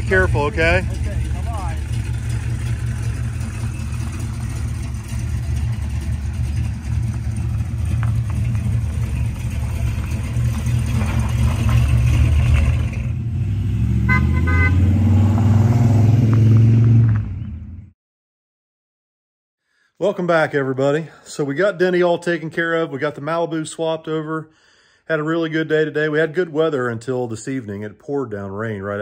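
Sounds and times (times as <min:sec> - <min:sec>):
car engine rumbling and revving: 0:00.0 - 0:17.9
car horn toot: 0:14.0 - 0:15.0.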